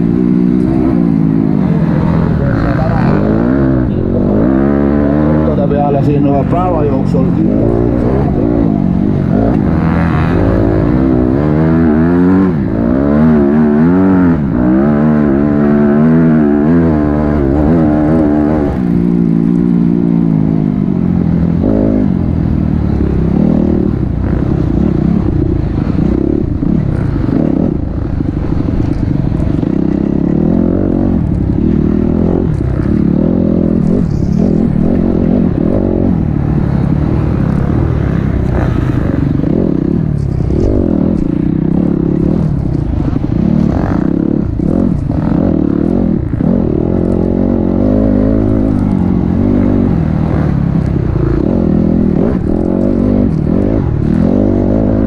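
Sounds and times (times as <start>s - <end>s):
dirt bike engine revving: 0.0s - 55.0s
rough track noise: 0.0s - 55.0s.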